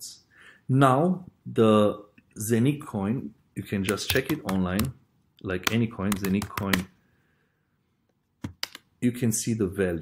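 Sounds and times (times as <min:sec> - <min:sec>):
computer keyboard keystrokes: 0:03.9 - 0:04.9, 0:05.6 - 0:06.9, 0:08.4 - 0:08.9.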